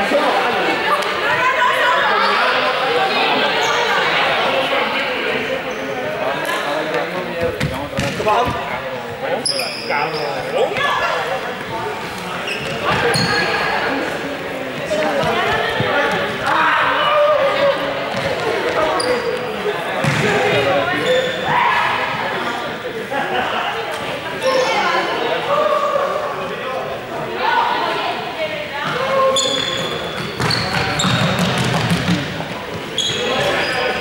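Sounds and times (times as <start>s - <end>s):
young players calling and chattering: 0.0s - 34.0s
sneakers squeaking on court floor: 7.4s - 8.7s, 9.4s - 16.4s, 18.1s - 21.5s, 28.8s - 34.0s.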